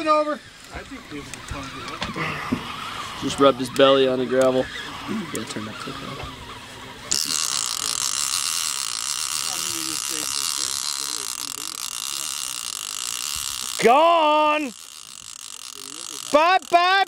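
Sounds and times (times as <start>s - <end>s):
fishing reel drag buzzing: 0.0s - 17.0s.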